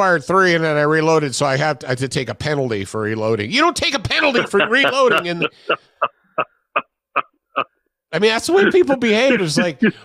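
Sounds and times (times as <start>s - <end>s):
man laughing: 4.2s - 7.8s, 8.4s - 10.0s.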